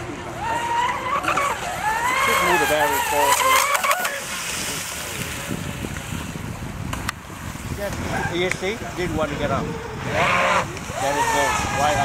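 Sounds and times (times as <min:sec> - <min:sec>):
rc boat motor and water wash: 0:00.0 - 0:12.0.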